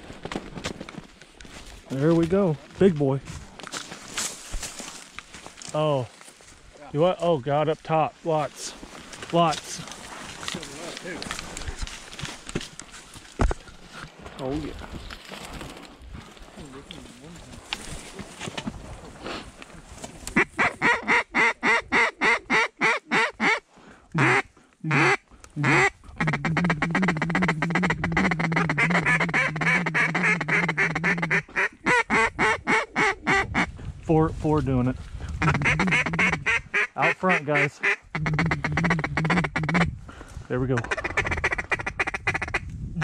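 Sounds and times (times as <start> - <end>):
duck calls rapid quacks: 20.4 - 23.6, 24.2 - 33.7, 35.4 - 39.9, 40.8 - 42.6.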